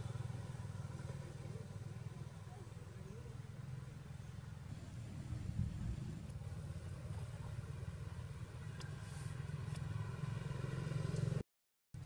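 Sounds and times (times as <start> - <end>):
vehicle engine rumbling: 0.0 - 11.4.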